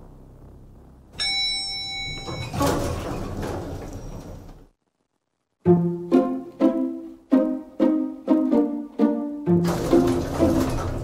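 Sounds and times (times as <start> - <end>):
elevator chime ding: 1.2 - 2.9
elevator doors sliding: 1.8 - 4.7, 9.5 - 11.0.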